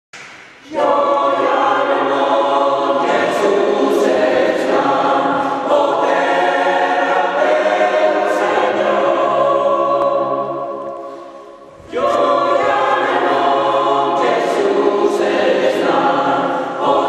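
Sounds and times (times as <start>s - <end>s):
mixed choir singing unaccompanied: 0.6s - 17.0s.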